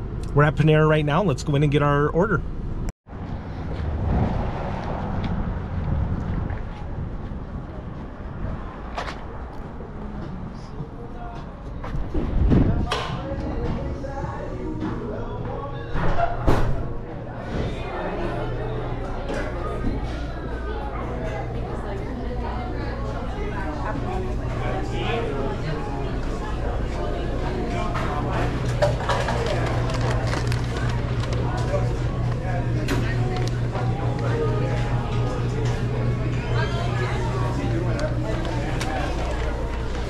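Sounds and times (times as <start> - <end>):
indistinct background talk: 6.3 - 40.0
clicks and clatter: 28.6 - 31.6.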